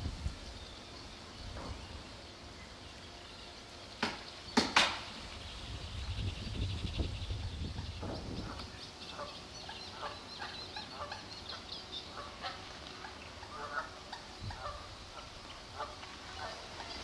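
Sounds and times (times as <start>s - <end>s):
bird calls: 0.4s - 17.0s.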